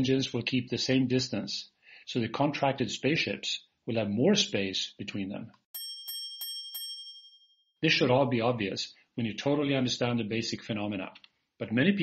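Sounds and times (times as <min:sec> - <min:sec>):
bright bell-like dings: 0:05.8 - 0:07.8.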